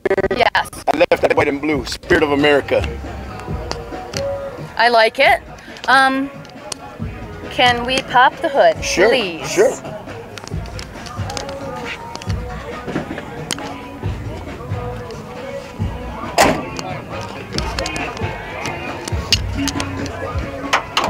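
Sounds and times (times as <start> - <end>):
background music: 0.0 - 21.0
distant voices: 1.1 - 21.0
sharp knock: 16.4 - 16.8.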